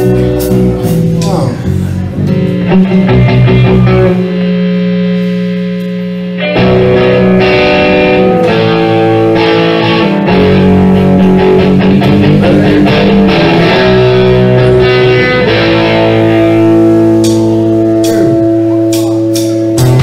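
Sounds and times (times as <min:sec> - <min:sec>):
rock band with electric guitars: 0:00.0 - 0:20.0.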